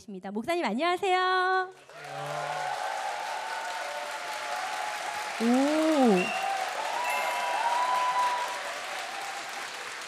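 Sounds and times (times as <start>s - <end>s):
audience applauding: 1.7s - 10.0s.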